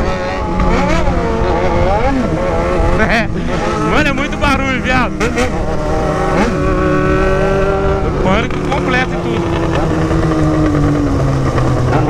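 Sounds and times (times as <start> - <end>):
motorcycle engine cruising: 0.0 - 12.0.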